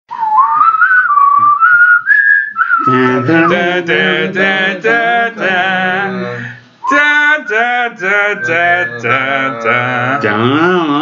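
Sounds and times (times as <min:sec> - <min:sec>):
person whistling a tune: 0:00.1 - 0:03.8, 0:06.8 - 0:09.1.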